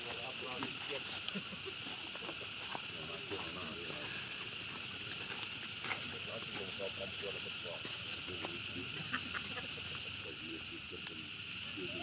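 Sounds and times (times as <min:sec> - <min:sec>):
low chattering voices: 0:00.0 - 0:12.0.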